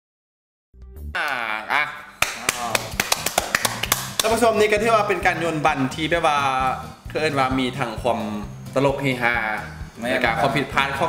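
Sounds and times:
people clapping hands: 2.1 - 4.5.

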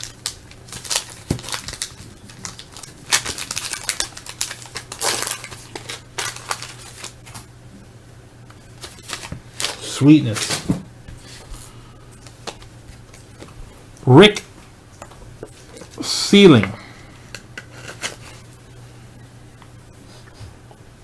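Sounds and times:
cardboard cards rustling: 0.0 - 7.4, 8.8 - 13.6, 17.6 - 18.4
wax paper wrapper crinkling: 0.0 - 7.5
low steady hum: 0.0 - 21.0.

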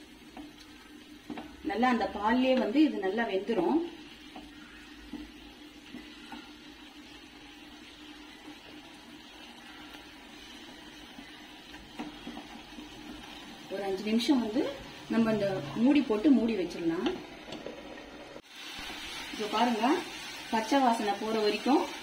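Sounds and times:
faint liquid simmering: 0.0 - 19.3
wooden spatula stirring in pan: 0.0 - 22.0.

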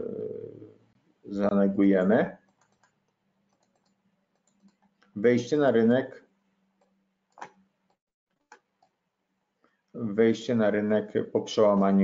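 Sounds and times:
computer mouse clicks: 2.4 - 5.1, 6.8 - 9.0.

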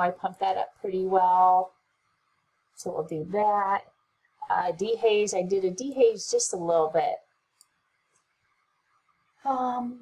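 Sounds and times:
person speaking: 4.5 - 7.2.

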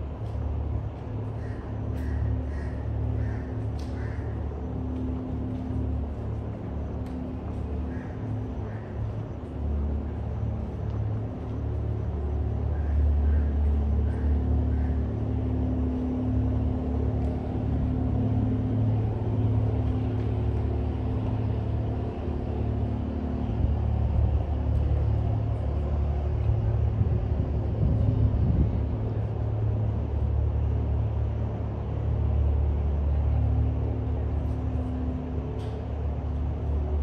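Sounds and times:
city ambience rumble: 0.0 - 37.0.

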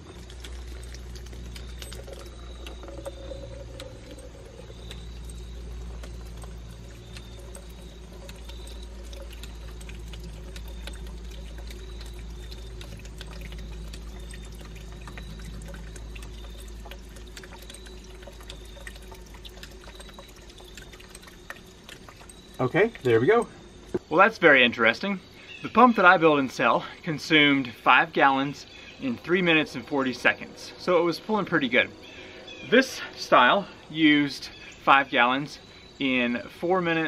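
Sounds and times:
water pouring into plastic cup: 0.0 - 24.0
low steady rumble: 0.0 - 24.4.

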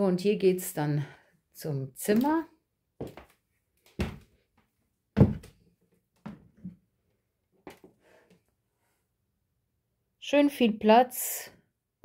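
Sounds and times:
door knocks and thumps: 5.2 - 5.5.

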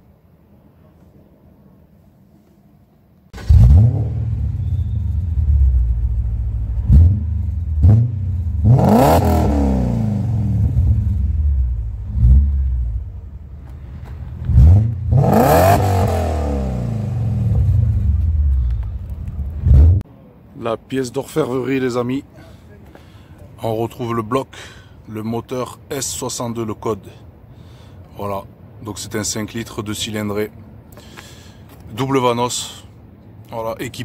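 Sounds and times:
car engine idling and revving: 3.4 - 20.0.

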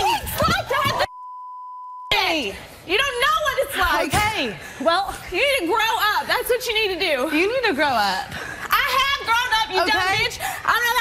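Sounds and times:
people arguing: 0.0 - 1.1, 8.7 - 11.0
censor bleep tone: 1.1 - 2.2.

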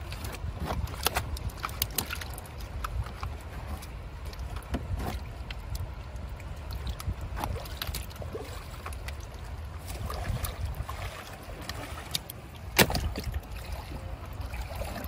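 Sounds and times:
shallow water sloshing and splashing: 0.0 - 15.0.

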